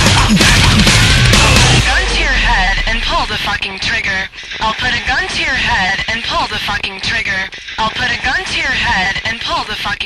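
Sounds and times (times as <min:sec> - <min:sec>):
heavy metal music: 0:00.0 - 0:06.2.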